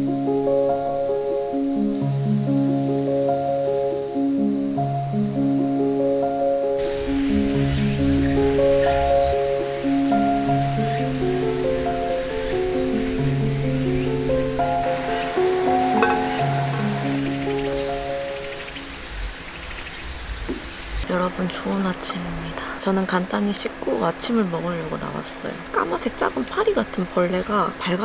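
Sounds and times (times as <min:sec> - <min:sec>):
slow melodic background music: 0:00.0 - 0:19.2
insects chirping: 0:00.0 - 0:28.0
woman speaking: 0:21.1 - 0:28.0.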